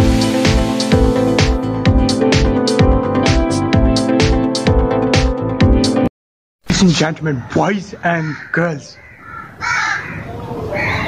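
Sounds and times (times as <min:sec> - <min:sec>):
crow cawing: 0:07.4 - 0:11.0.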